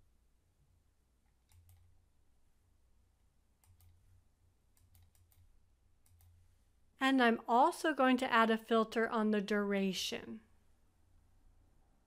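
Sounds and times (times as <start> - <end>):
computer mouse clicks: 1.2 - 1.9, 3.6 - 4.1, 4.7 - 6.4.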